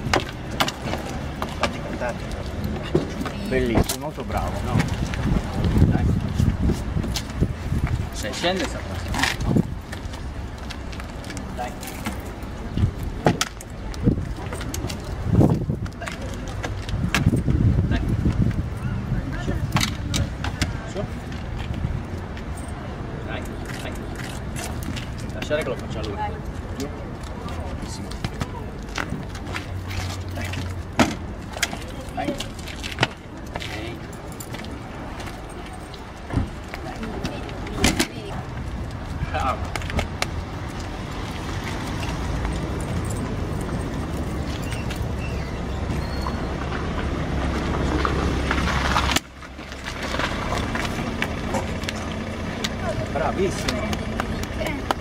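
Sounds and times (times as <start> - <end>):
motor vehicle running: 0.0 - 55.0.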